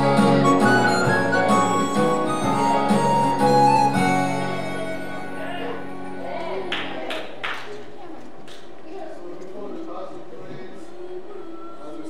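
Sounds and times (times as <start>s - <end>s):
instrumental accompaniment: 0.0s - 6.6s.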